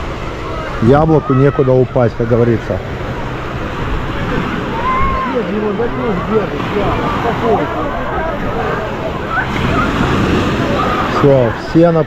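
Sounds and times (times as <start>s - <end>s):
people calling and shouting: 0.0s - 12.0s
small waves breaking: 0.0s - 12.0s
overlapping voices of bathers: 6.1s - 11.2s.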